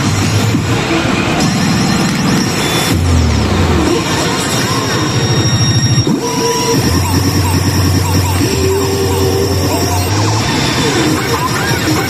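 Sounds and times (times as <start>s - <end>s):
pachinko machine electronic effects: 0.0s - 12.0s
steady high whine: 0.0s - 12.0s
gliding electronic tones: 0.8s - 12.0s
rapid pulsing rumble: 5.3s - 12.0s.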